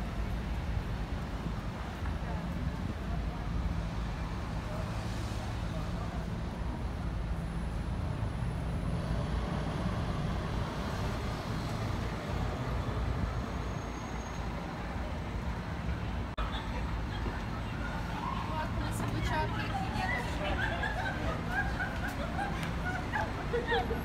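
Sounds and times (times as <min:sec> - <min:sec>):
city road traffic rumble: 0:00.0 - 0:24.0.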